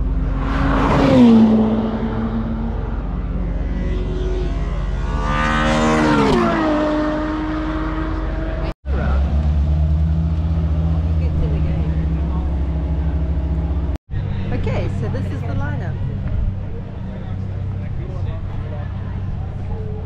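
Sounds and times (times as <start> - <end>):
race car passing by: 0.0 - 9.3
low engine rumble: 7.5 - 20.0.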